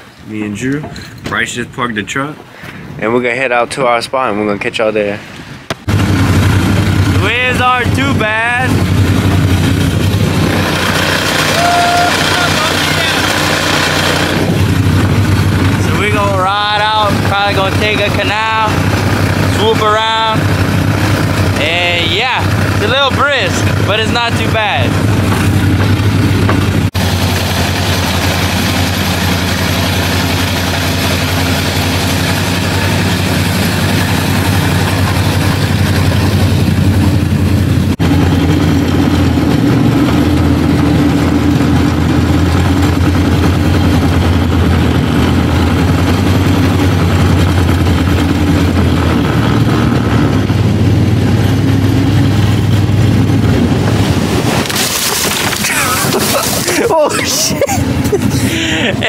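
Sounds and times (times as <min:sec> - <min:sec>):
wind and water rushing: 0:05.0 - 0:59.0
boat motor running: 0:05.7 - 0:59.0.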